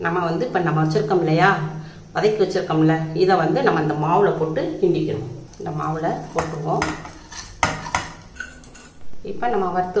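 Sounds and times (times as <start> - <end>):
spoon scraping steel plate: 5.5 - 9.0.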